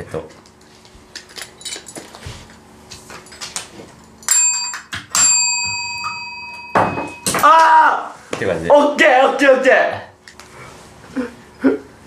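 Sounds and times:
bell ringing: 4.2 - 7.6.

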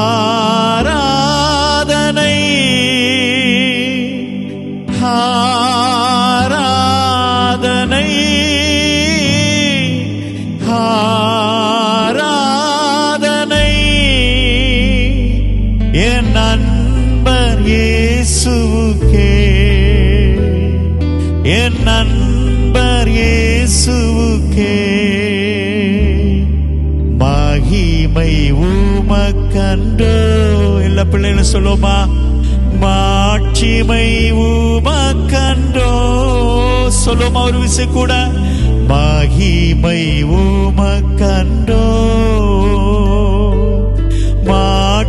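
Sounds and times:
low backing notes: 0.0 - 45.0
man singing with vibrato: 0.0 - 45.0.

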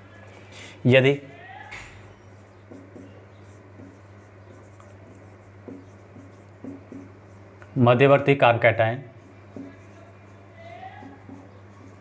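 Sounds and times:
steady low hum: 0.0 - 12.0
marker writing on whiteboard: 1.8 - 7.6, 9.1 - 12.0.

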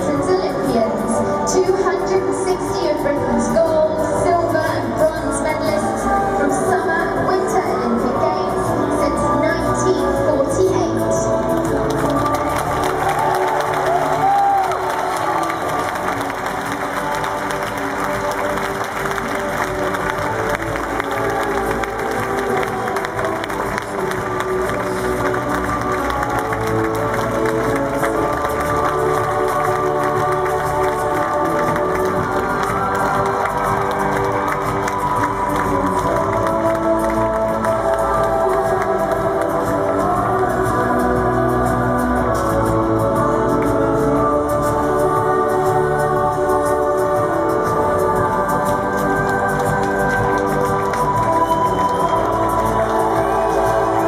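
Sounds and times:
stadium music with held notes: 0.0 - 54.0
crowd cheering and applauding: 11.4 - 54.0.

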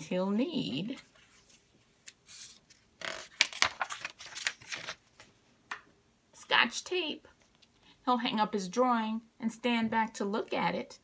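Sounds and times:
book pages rustling: 1.0 - 5.4.

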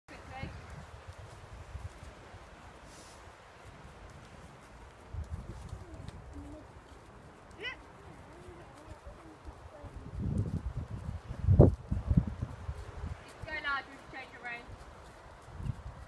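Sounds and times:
horse hooves trotting on soft ground: 0.1 - 16.0.

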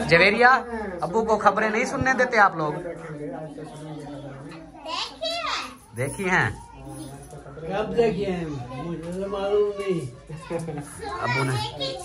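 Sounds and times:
children's voices: 3.6 - 5.9, 8.3 - 12.0.

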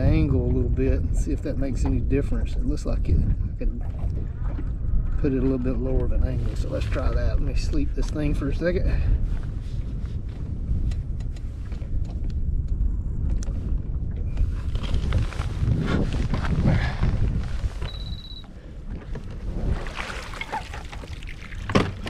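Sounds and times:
water against boat hull: 0.0 - 22.0
wind on microphone: 0.0 - 22.0
short electronic beep: 17.9 - 18.5.

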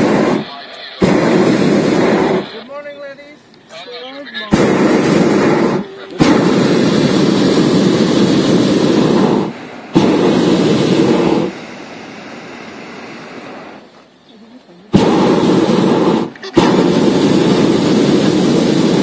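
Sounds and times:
propane burner blasts: 0.0 - 19.0
steady hiss: 0.0 - 19.0.

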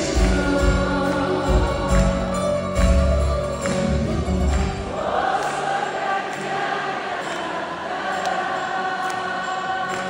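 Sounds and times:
woman singing: 0.0 - 2.9
live band music: 0.0 - 5.1.

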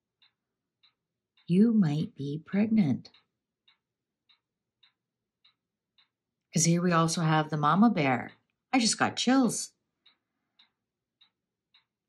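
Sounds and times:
faint clock ticking: 0.0 - 12.0.

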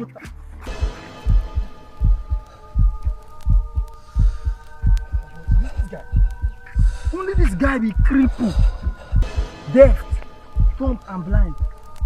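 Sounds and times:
heartbeat-style double thump: 0.7 - 12.0
steady held chord: 0.7 - 12.0.

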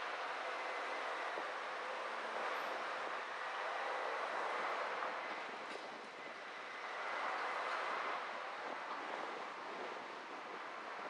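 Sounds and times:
car road and wind noise: 0.0 - 11.0.

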